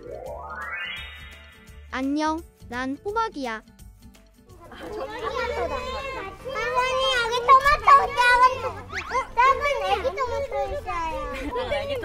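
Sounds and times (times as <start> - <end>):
young children chattering: 4.5 - 12.0.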